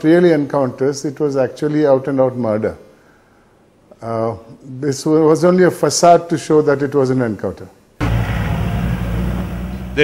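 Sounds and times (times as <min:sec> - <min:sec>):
vehicle engine droning: 0:08.0 - 0:10.0.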